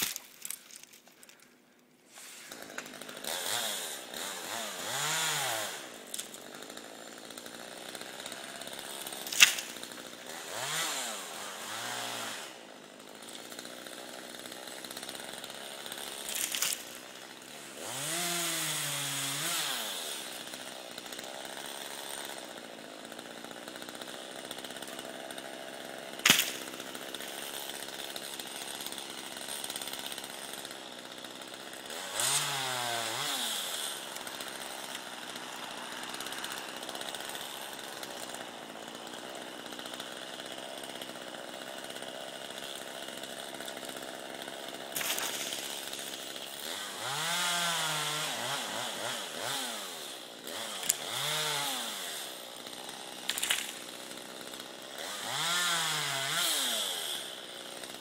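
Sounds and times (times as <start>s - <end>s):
sharp crack: 0.0s - 1.4s, 9.2s - 10.0s, 16.3s - 17.0s, 26.2s - 27.4s, 53.2s - 53.9s
chainsaw idling and revving: 0.0s - 58.0s.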